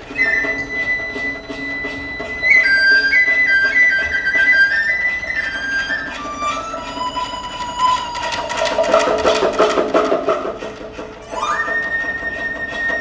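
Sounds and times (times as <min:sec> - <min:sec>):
bamboo flute melody: 0:00.0 - 0:13.0
strings playing rapid repeated notes: 0:00.0 - 0:13.0.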